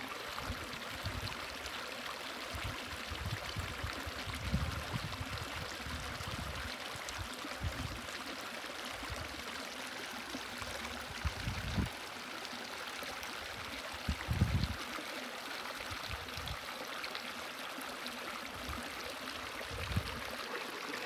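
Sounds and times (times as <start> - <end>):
creek running over rocks: 0.0 - 21.0.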